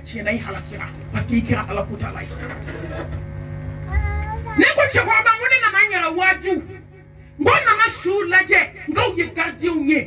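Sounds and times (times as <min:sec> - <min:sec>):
woman preaching into microphone: 0:00.0 - 0:02.6, 0:04.6 - 0:10.0.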